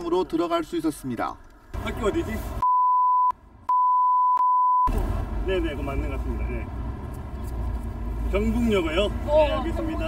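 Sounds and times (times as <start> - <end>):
censor bleep tone: 2.6 - 4.9.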